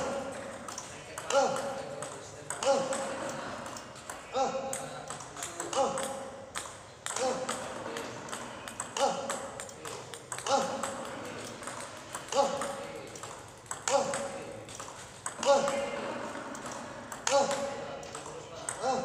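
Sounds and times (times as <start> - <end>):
table tennis ball clicking: 0.0 - 18.9.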